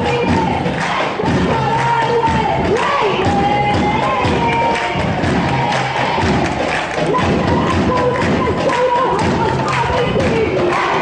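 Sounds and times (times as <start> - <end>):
women chanting in high voices: 0.0 - 11.0.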